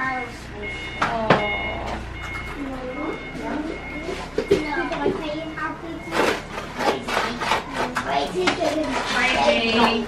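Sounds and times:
chatter of adults and children: 0.0s - 10.0s.

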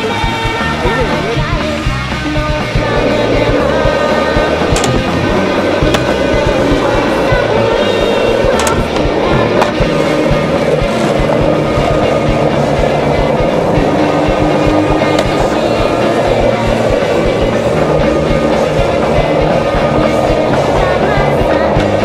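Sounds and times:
music track: 0.0s - 22.0s
skateboard clacking: 0.0s - 22.0s
skateboard wheels rolling on asphalt: 0.0s - 22.0s.

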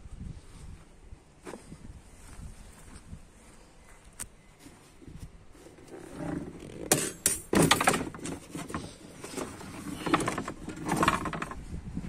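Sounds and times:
boards scraping in car boot: 5.6s - 11.6s
sharp knocks and clattering: 6.9s - 11.6s.

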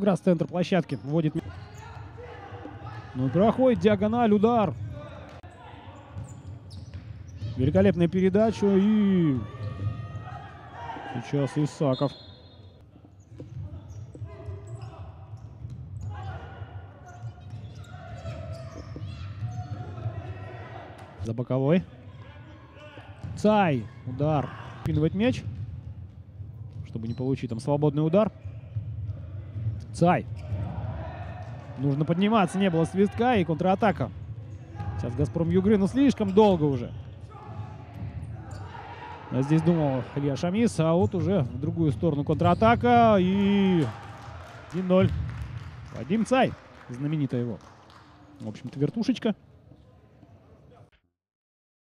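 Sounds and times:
players shouting in echoing hall: 1.4s - 12.8s, 13.8s - 25.1s, 28.4s - 47.3s.

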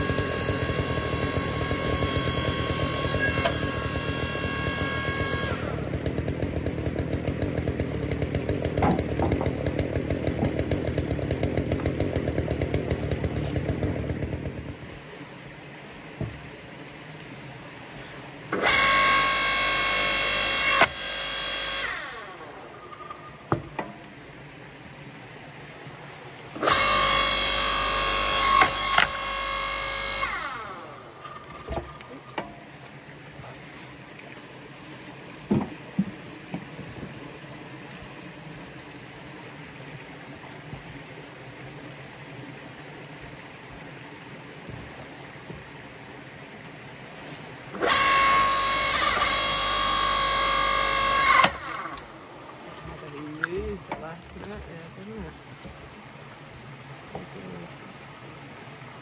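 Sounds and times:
log splitter motor whining: 0.0s - 16.8s, 17.8s - 39.8s, 47.2s - 55.8s
wood cracking: 6.7s - 14.1s
light knocks of wood: 16.2s - 16.4s, 35.4s - 37.2s.

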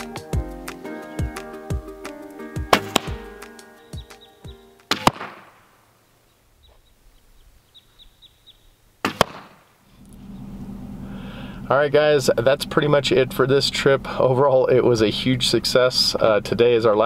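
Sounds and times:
background music with plucked notes: 0.0s - 5.2s
arrow striking archery target: 2.7s - 3.5s, 4.9s - 5.7s, 9.0s - 9.7s.

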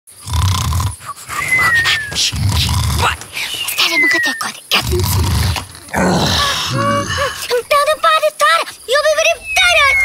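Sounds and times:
cartoon snoring with whistle: 0.2s - 5.6s.

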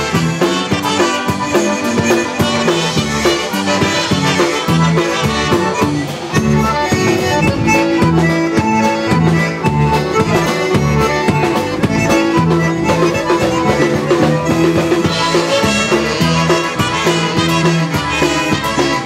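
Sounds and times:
accordion: 0.0s - 19.0s
concertina: 0.0s - 19.0s
polka band playing: 0.0s - 19.0s.

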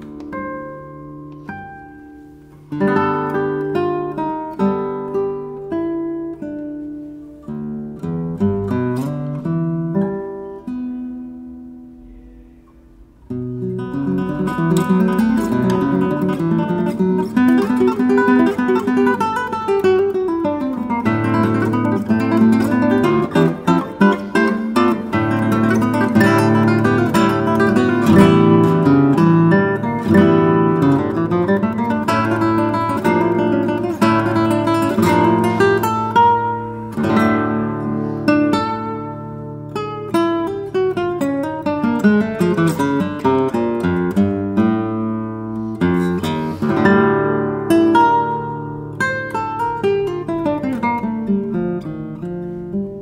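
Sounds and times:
fingerstyle classical guitar: 0.0s - 53.0s.

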